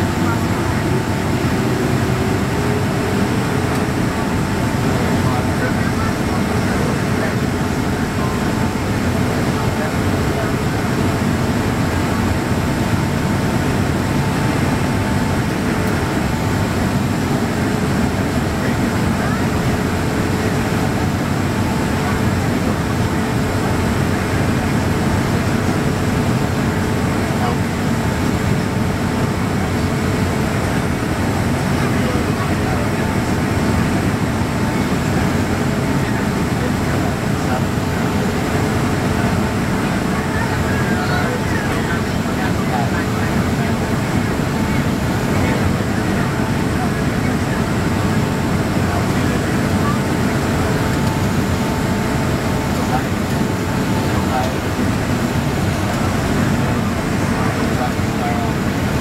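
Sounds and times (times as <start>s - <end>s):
airliner cabin engine noise: 0.0s - 59.0s
constant hum tone: 0.0s - 59.0s.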